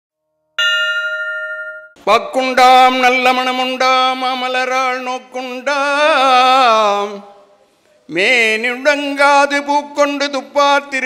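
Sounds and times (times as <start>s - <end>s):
bell-like ding: 0.6s - 2.0s.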